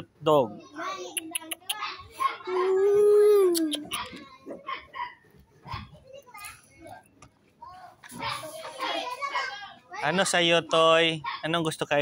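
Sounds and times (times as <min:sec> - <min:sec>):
people talking: 0:01.0 - 0:04.4
long held falling vocal sound: 0:02.5 - 0:03.9.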